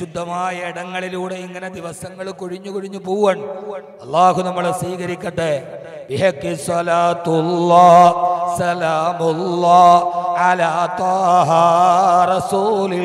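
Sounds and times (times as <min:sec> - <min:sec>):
man chanting through microphone: 0:00.0 - 0:13.0.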